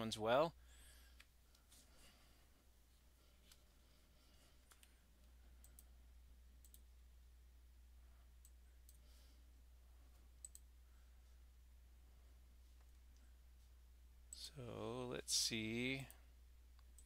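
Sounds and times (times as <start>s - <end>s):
faint low hum: 0.0s - 17.0s
faint clicks: 4.6s - 5.9s, 6.6s - 6.9s, 10.1s - 10.7s.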